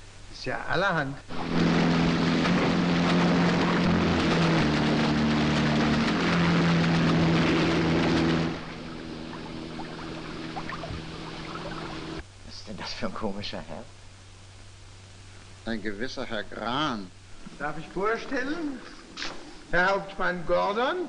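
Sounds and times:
low engine drone: 0:01.2 - 0:12.2
motorboat rushing spray: 0:01.3 - 0:12.2
water washing: 0:01.3 - 0:12.2.

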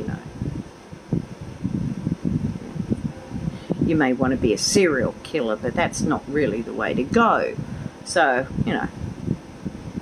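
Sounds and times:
low uneven rumbling: 0:00.0 - 0:10.0.

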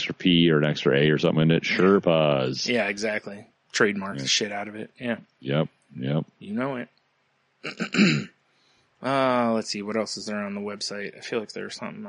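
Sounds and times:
man clearing his throat: 0:07.7 - 0:08.3.

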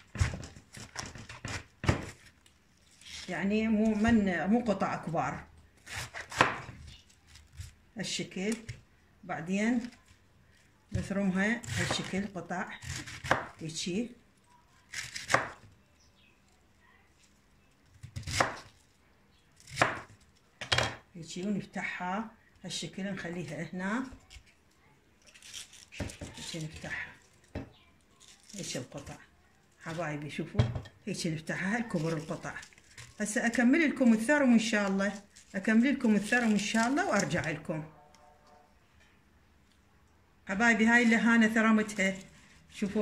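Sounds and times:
knife cutting cabbage: 0:00.0 - 0:04.3, 0:05.8 - 0:07.8, 0:11.1 - 0:13.6, 0:14.8 - 0:15.6, 0:18.0 - 0:18.8, 0:25.3 - 0:27.2
knife cutting cabbage on board: 0:05.8 - 0:07.0, 0:18.0 - 0:18.7.

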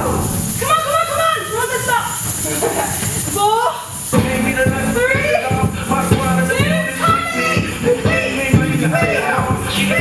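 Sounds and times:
music beat: 0:04.1 - 0:10.0.

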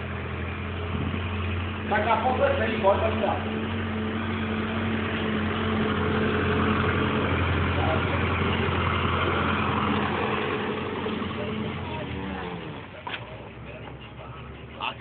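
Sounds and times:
tractor engine drone: 0:00.0 - 0:15.0.

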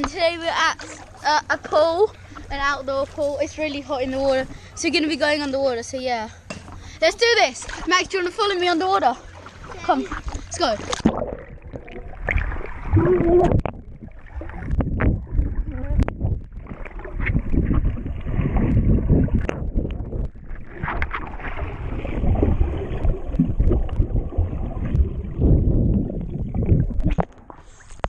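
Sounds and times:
muffled underwater churning and bubbling: 0:00.0 - 0:28.0.

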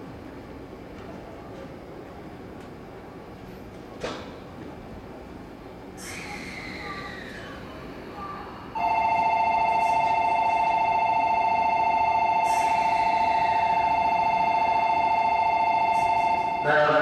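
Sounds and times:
electronic departure bell: 0:08.8 - 0:17.0.

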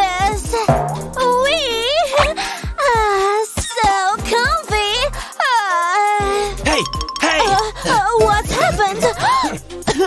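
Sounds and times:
background music: 0:00.7 - 0:10.0.

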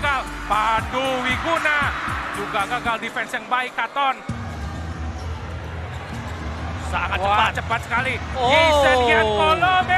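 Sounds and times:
crowd noise: 0:00.0 - 0:09.9.

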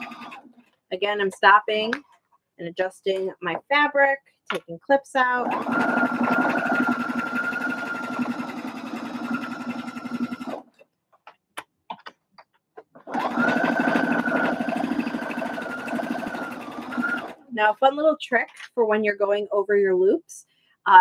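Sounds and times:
electric sewing machine stitching: 0:00.0 - 0:00.6, 0:05.3 - 0:10.7, 0:13.0 - 0:17.5.

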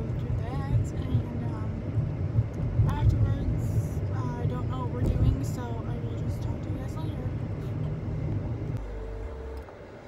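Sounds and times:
car engine and tyres rumbling: 0:00.0 - 0:10.0.

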